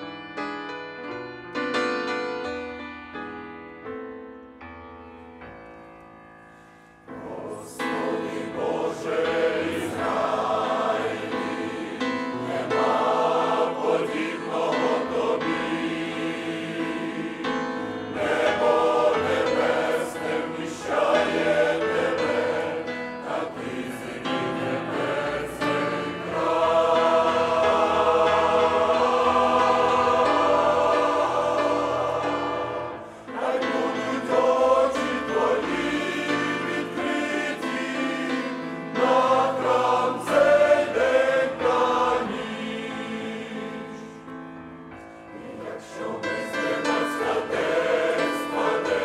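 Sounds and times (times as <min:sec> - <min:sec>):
piano accompaniment: 0:00.0 - 0:49.0
choir singing a hymn: 0:07.0 - 0:49.0.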